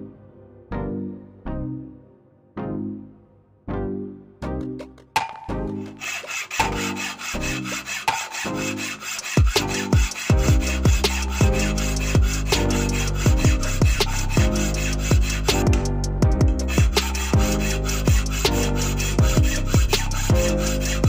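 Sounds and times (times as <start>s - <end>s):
background music with steady beat: 3.7s - 21.0s
hand file scraping metal: 5.2s - 21.0s.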